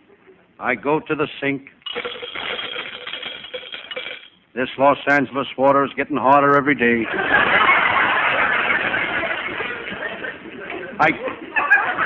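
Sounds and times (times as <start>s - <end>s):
continuous clattering rattle: 1.9s - 4.4s.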